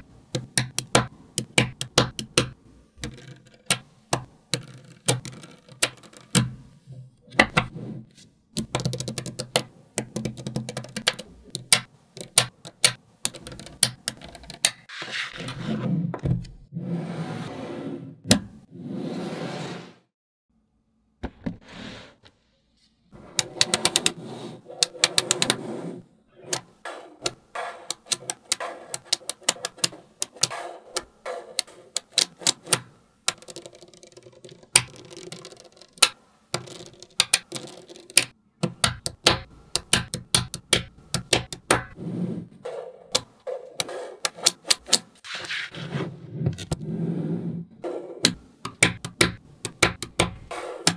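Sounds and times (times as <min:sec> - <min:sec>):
magnetic balls clicking together: 0:00.3 - 0:06.5, 0:08.5 - 0:14.9, 0:26.5 - 0:42.0, 0:43.1 - 0:45.2, 0:48.2 - 0:50.9.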